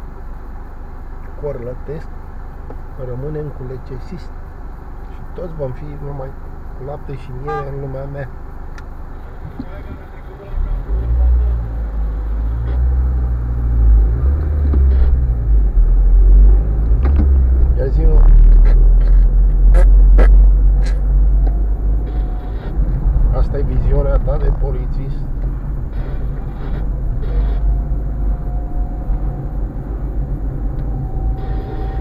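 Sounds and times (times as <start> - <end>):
car engine rumble: 0.0 - 32.0
road noise inside car: 0.0 - 32.0.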